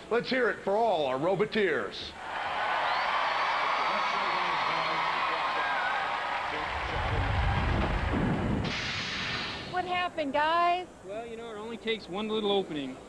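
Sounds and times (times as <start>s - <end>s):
audience applauding and cheering: 2.2s - 8.7s
deep rumbling sound effect: 6.7s - 9.7s.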